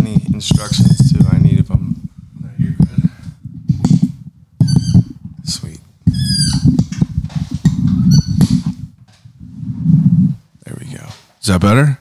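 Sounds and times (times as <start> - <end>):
microphone handling rumble and thuds: 0.0 - 11.3
microphone mount squeaks: 0.3 - 1.6, 3.7 - 5.4, 6.1 - 8.8.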